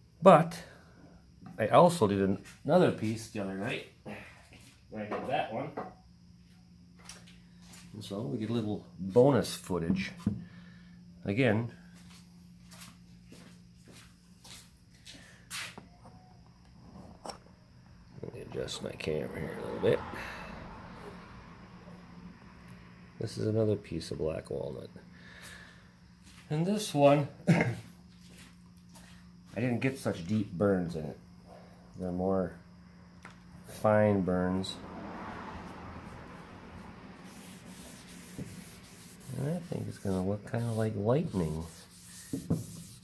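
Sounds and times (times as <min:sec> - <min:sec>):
low room hum: 0:00.0 - 0:34.9
cloth rubbing on wood: 0:37.2 - 0:43.0.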